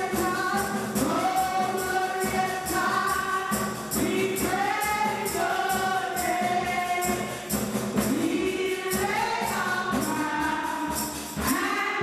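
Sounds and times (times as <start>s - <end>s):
women's choir singing gospel: 0.0s - 12.0s.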